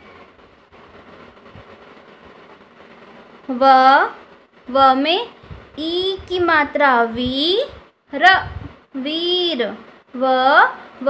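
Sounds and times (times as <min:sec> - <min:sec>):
low background hiss: 0:00.0 - 0:11.0.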